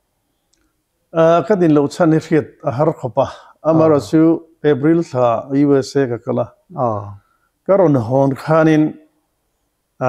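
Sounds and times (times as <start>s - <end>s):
man speaking: 1.2s - 9.0s.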